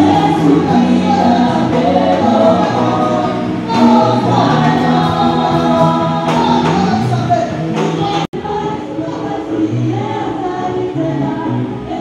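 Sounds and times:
choir singing gospel through pa: 0:00.0 - 0:12.0.

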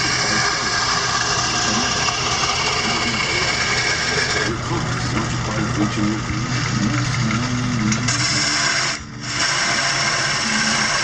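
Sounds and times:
lathe motor hum: 0:00.0 - 0:11.0
turning tool cutting wood: 0:00.0 - 0:11.0.

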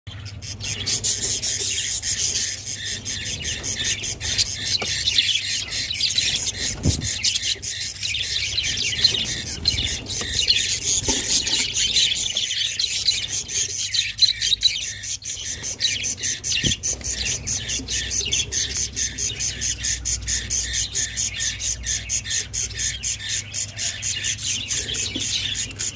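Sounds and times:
budgerigars chirping: 0:00.1 - 0:25.9.

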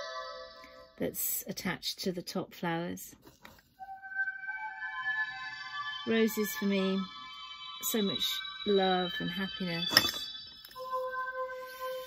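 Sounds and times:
soft electronic music: 0:00.0 - 0:01.0, 0:03.5 - 0:12.0.

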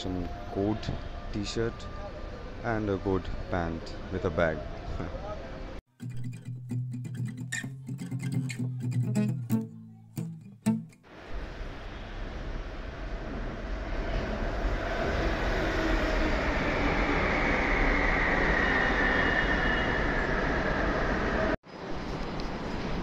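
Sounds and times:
guitar music: 0:05.9 - 0:11.4
high train whine: 0:11.1 - 0:23.0
metro train rumbling on rails: 0:11.3 - 0:23.0.

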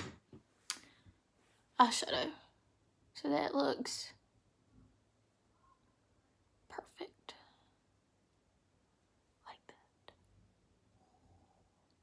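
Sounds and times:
woman whispered mouth sounds: 0:09.4 - 0:10.3.

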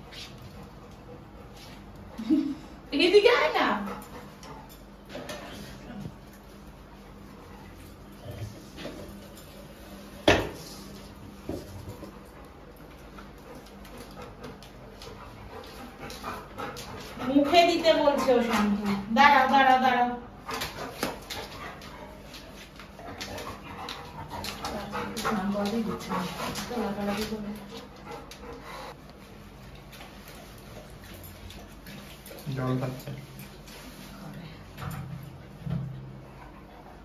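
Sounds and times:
dog panting: 0:00.0 - 0:05.9, 0:11.8 - 0:19.5, 0:20.3 - 0:33.0
woman's voice: 0:02.9 - 0:04.0, 0:17.2 - 0:20.3, 0:24.5 - 0:27.9.

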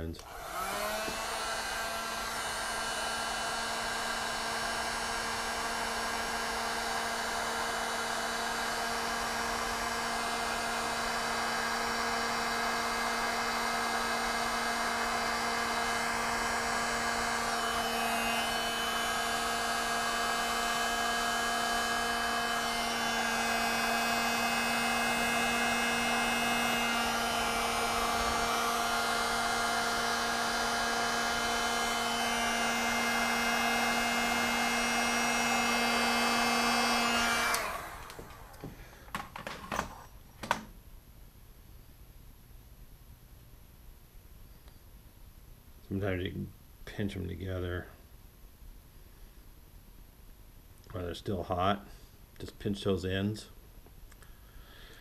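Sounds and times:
heat gun fan humming: 0:00.0 - 0:40.7.

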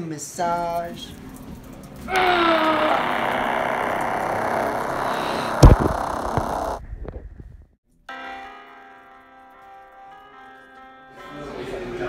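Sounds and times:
heavy thump: 0:05.6 - 0:06.4.

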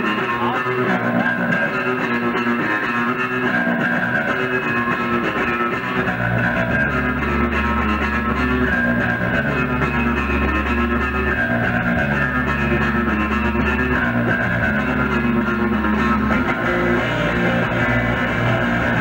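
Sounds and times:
bass guitar long low notes: 0:00.0 - 0:19.0
electric guitar: 0:00.0 - 0:19.0
live rock band playing: 0:00.0 - 0:19.0.

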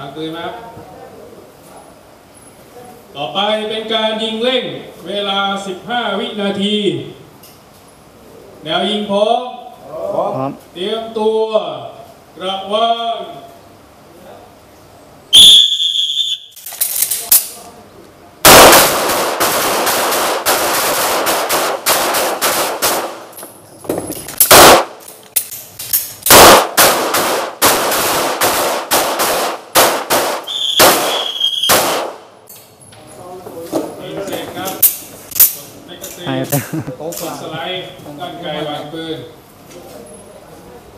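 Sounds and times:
rapid pistol shots: 0:18.4 - 0:23.3, 0:24.4 - 0:25.1, 0:26.3 - 0:32.3.

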